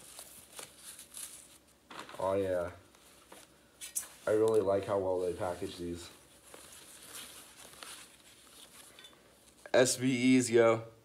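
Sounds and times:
plastic wrap rustling: 0.0s - 9.7s.

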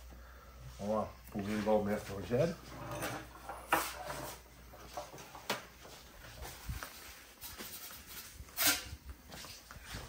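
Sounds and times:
metal pizza peel scraping: 8.5s - 8.9s.

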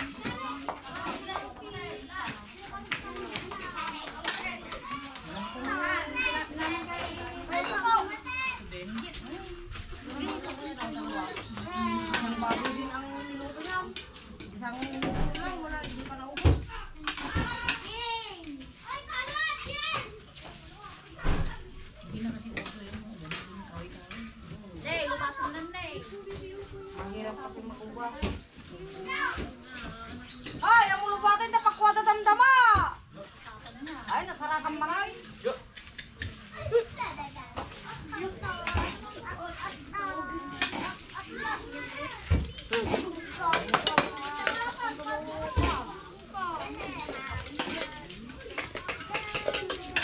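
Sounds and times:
children calling and chattering: 0.0s - 50.0s.

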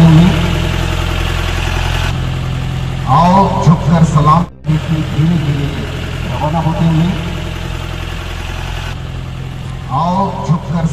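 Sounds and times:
jeep engine running at low revs: 0.0s - 10.9s.

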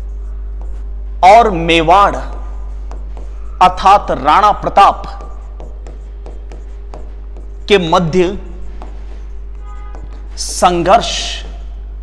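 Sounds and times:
steady low hum: 0.0s - 12.0s
pen tapping on a screen: 0.6s - 0.9s, 2.2s - 3.5s, 4.1s - 7.9s, 8.6s - 10.6s
man speaking: 1.2s - 2.5s, 3.6s - 5.5s, 7.6s - 8.6s, 10.3s - 11.7s.

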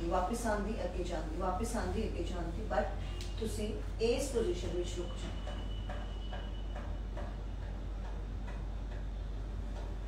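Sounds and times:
steady low hum: 0.0s - 10.0s
faint regular ticking: 2.9s - 10.0s.

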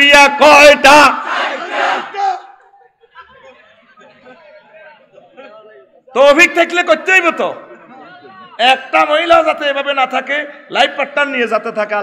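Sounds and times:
crowd shouting together: 0.9s - 2.7s
faint crowd murmuring: 2.2s - 6.2s, 7.6s - 8.6s.

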